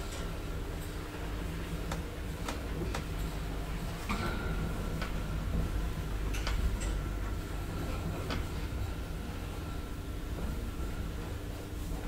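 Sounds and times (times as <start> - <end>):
elevator car rumble and whine: 0.0 - 12.0.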